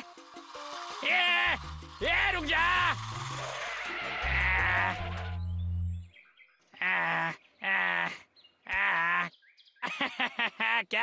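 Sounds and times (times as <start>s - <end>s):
cartoon music with bass line: 4.2s - 6.1s
man chuckling: 9.8s - 11.0s.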